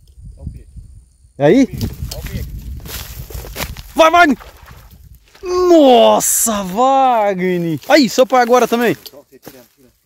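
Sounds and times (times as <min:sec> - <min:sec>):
wind on microphone: 0:00.0 - 0:06.7.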